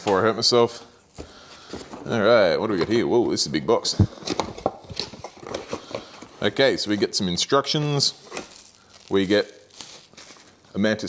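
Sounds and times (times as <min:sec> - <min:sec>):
cardboard packaging handled: 0:07.7 - 0:10.7.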